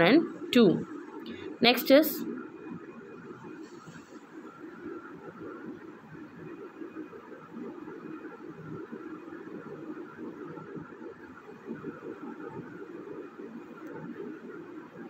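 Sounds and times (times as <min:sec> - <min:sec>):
low room hum and hiss: 0:00.0 - 0:15.0.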